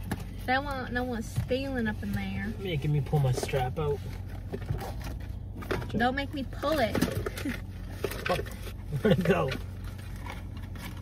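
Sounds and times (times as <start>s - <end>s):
car cabin hum: 0.0s - 11.0s.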